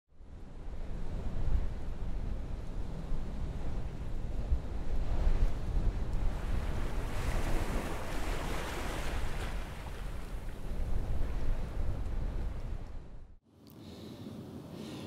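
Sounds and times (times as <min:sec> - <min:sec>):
low wind-like rumble: 0:00.1 - 0:15.0
surf breaking: 0:06.3 - 0:10.7.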